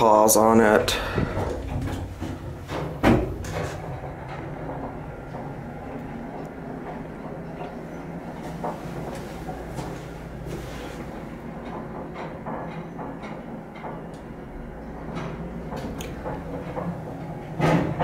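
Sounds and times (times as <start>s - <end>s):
elevator running rumble: 0.0s - 18.0s
elevator sharp thump: 0.9s - 5.6s.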